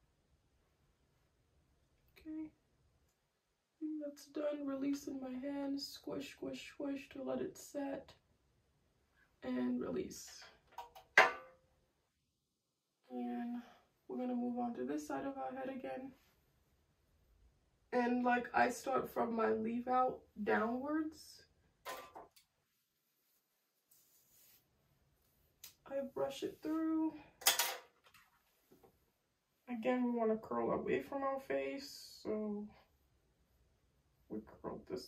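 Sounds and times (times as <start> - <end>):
person speaking: 25.6 - 27.4.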